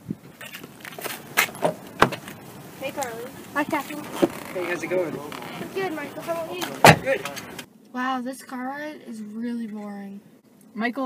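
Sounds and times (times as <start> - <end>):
car door opening: 0.4 - 2.4, 3.0 - 7.7
footsteps on pavement: 0.4 - 7.7.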